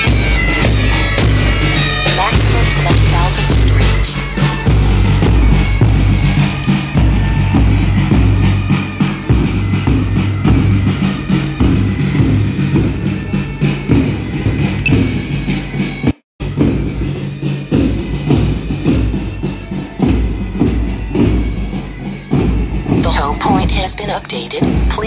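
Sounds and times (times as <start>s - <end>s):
marching band music: 0.0s - 15.9s, 16.9s - 25.0s
drum strokes: 0.0s - 25.0s.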